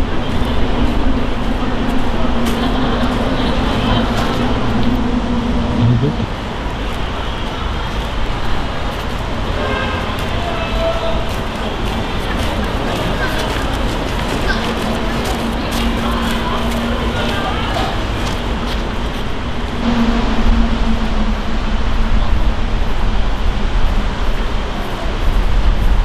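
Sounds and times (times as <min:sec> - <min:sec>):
low hum: 0:00.0 - 0:07.1, 0:15.1 - 0:26.0
low rumble: 0:00.0 - 0:07.4, 0:14.8 - 0:26.0.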